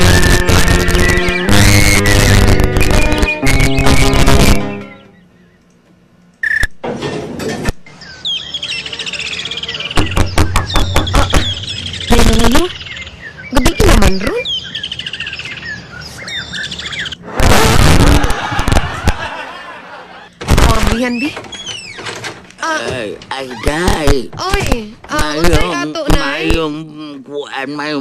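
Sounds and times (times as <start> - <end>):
small birds chirping: 0.2 - 6.7, 7.8 - 17.2, 20.3 - 28.0.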